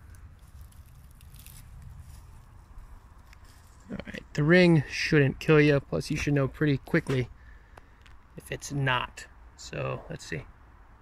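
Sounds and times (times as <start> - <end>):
handling and rustling noise: 0.0 - 4.3
soft crackles: 0.0 - 8.6
steady low rumble: 0.0 - 11.0.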